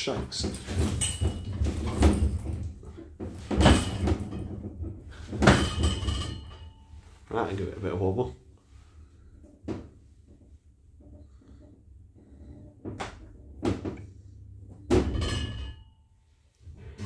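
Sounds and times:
lift knocks and thuds: 0.0s - 7.1s, 12.2s - 15.9s.

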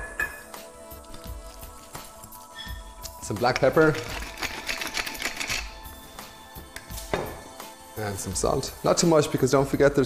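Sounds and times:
pepper mill grinding clicks: 3.4s - 5.7s.

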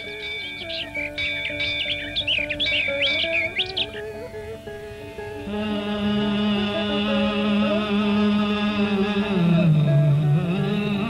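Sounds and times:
birds chirping: 0.0s - 7.3s
slow plucked-string music: 0.0s - 11.0s.

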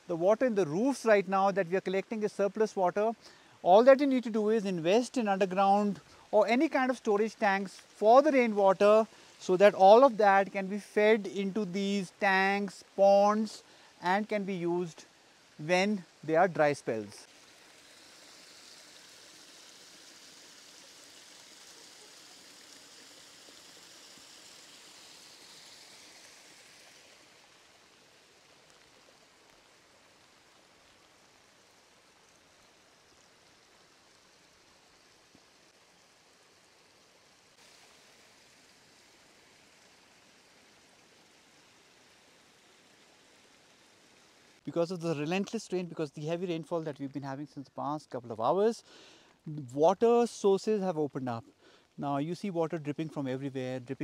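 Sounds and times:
rain hiss: 0.0s - 54.0s
water running in drainage channel: 0.0s - 54.0s.

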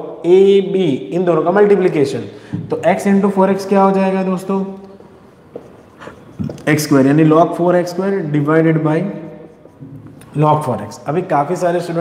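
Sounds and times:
man speaking: 0.0s - 4.8s, 6.0s - 12.0s
marker writing on whiteboard: 3.0s - 12.0s.

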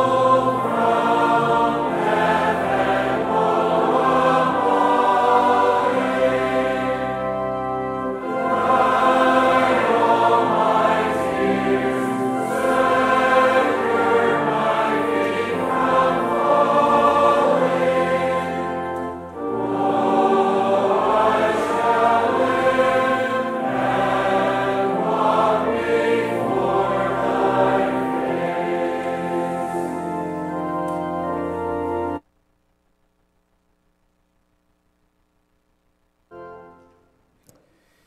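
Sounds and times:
congregation singing a psalm: 0.0s - 32.2s
pipe organ: 0.0s - 32.3s, 36.2s - 37.3s.

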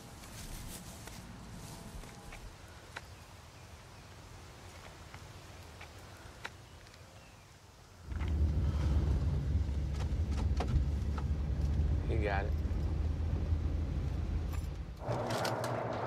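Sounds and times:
faint outdoor ambience: 0.0s - 16.0s
van engine rumble and road noise: 8.1s - 16.0s.

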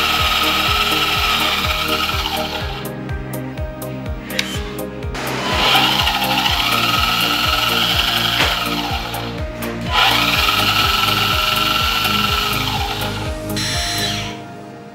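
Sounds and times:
electric motor whirring: 0.0s - 2.9s, 4.2s - 14.4s
background music with beat: 0.0s - 14.9s.

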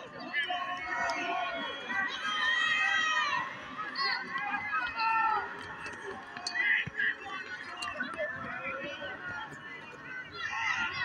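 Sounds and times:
crowd noise: 0.0s - 11.0s
spectators talking and calling out: 0.0s - 11.0s.

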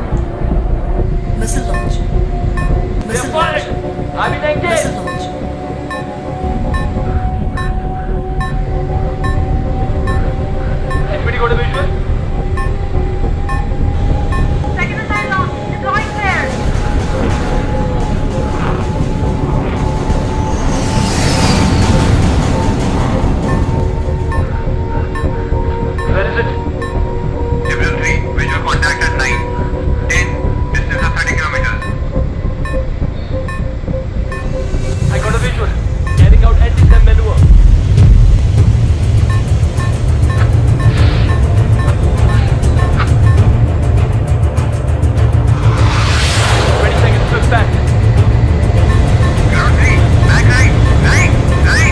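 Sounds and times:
low jet engine rumble: 0.0s - 51.9s
sustained drone: 0.0s - 51.9s
tense score music: 0.0s - 51.9s
short warning beeps: 6.7s - 7.0s, 10.9s - 11.2s, 26.0s - 26.2s.

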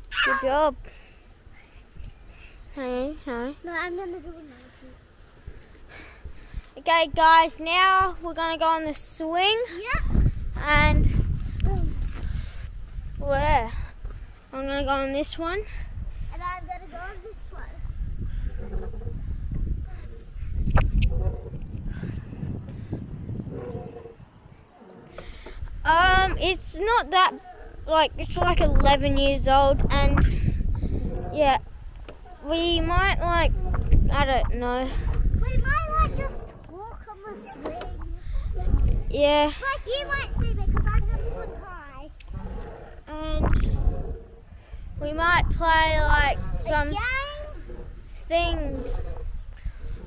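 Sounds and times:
low wind rumble: 0.0s - 50.0s
faint child's voice: 0.1s - 0.7s
microphone handling noise: 17.8s - 24.3s, 28.1s - 36.8s, 40.3s - 41.6s, 42.2s - 47.0s.

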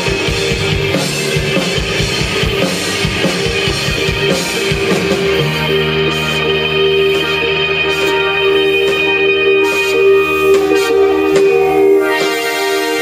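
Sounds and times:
bass: 0.0s - 13.0s
electric guitars: 0.0s - 13.0s
keyboard sustained notes: 0.0s - 13.0s.

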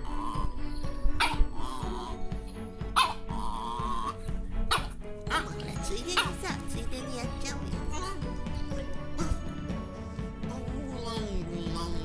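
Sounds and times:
small dog crying: 0.0s - 2.2s, 3.0s - 5.5s
dog whining: 0.0s - 5.6s
background music: 0.0s - 12.0s.

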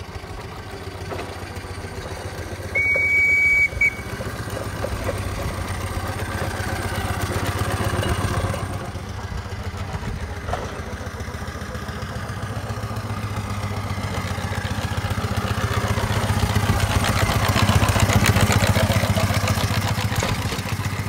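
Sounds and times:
steam traction engine running: 0.0s - 21.0s.

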